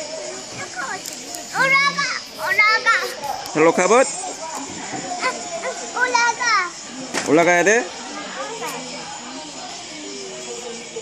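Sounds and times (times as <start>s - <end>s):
children's voices: 0.0s - 3.6s, 4.2s - 7.2s, 8.0s - 9.8s.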